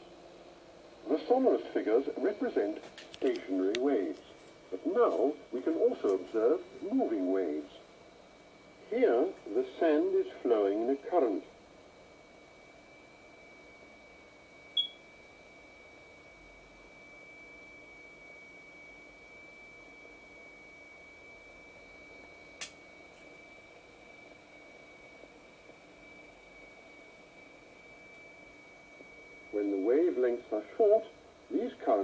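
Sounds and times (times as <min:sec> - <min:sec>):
sharp click: 0:22.6 - 0:22.8.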